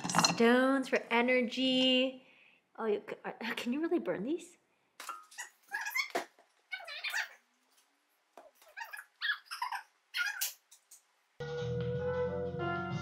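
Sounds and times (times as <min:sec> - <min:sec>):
dog whining and yipping: 0:06.7 - 0:07.4, 0:08.6 - 0:10.5.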